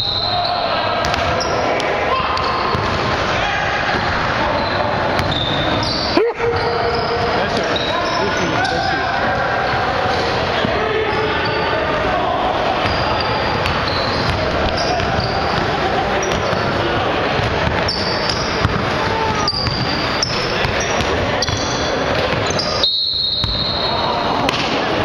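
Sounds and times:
sneaker squeaks: 0.0 - 3.0, 4.4 - 11.9, 12.7 - 24.4
players calling out: 0.0 - 25.0
basketball bouncing on wooden floor: 5.2 - 5.4, 13.6 - 22.6.

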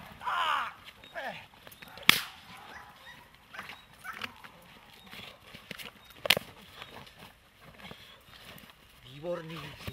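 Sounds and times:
scuffling: 0.0 - 9.9
sharp crack: 2.0 - 2.5.

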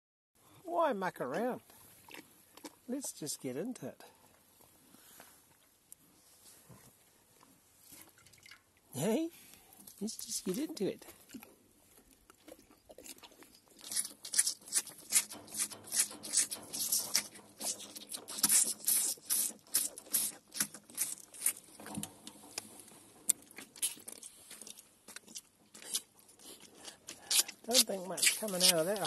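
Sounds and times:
calf sucking on rubber teat: 2.0 - 2.8, 11.2 - 22.7, 23.5 - 29.0.

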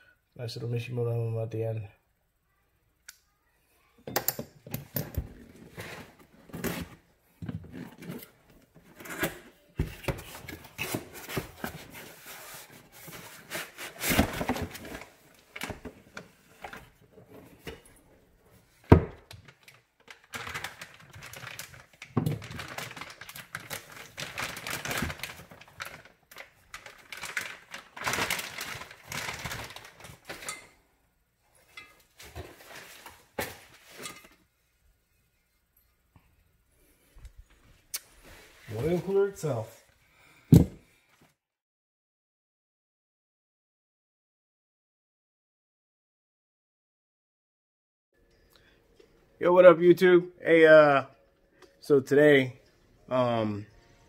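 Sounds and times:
plastic packaging crinkling: 19.4 - 30.5.

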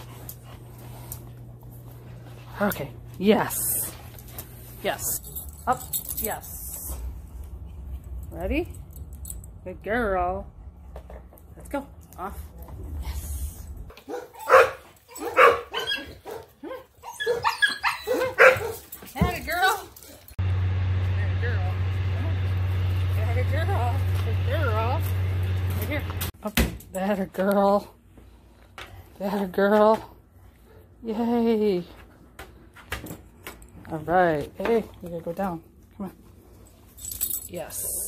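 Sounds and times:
dog barking: 14.0 - 18.8
steady low hum: 20.4 - 26.4.

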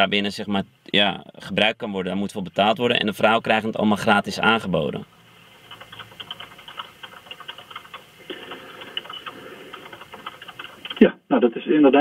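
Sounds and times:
keyboard typing over telephone: 5.5 - 11.0.

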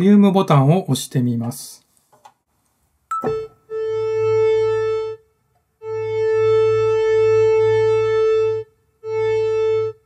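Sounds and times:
held synthesizer note: 3.1 - 5.2.

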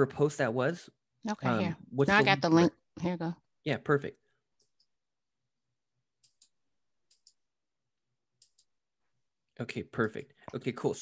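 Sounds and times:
computer mouse clicks: 6.2 - 7.4, 8.4 - 8.8.

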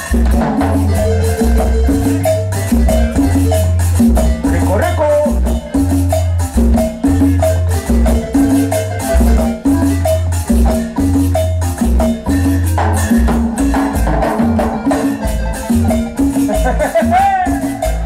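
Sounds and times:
light percussion beat: 0.0 - 18.0
low bass notes: 0.0 - 18.0
marimba ensemble playing: 0.0 - 18.0.

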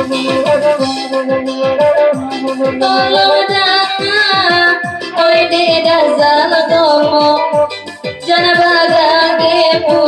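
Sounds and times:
electronic keyboard rhythm: 0.0 - 10.0
woman singing into a microphone: 0.0 - 10.0.

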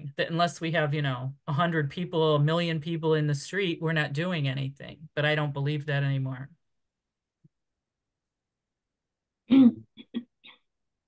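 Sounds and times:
person clearing throat: 9.5 - 10.3.

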